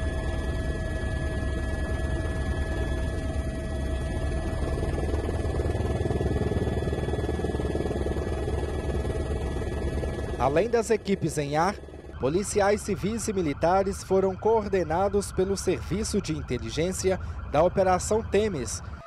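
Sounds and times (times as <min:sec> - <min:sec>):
helicopter rotor chop: 0:00.0 - 0:18.7
turbine whine: 0:00.0 - 0:19.0.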